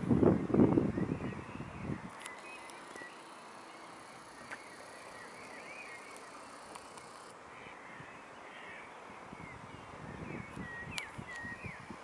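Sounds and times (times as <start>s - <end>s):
faint bird chirps: 0.8s - 12.0s.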